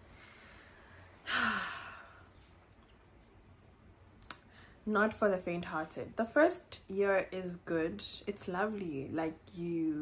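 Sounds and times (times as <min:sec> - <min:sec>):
woman sighing: 0:01.2 - 0:02.3
woman speaking: 0:04.2 - 0:10.0.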